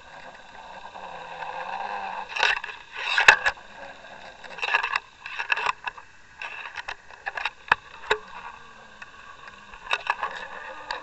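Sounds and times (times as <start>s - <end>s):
boat engine hum underwater: 0.0s - 11.0s.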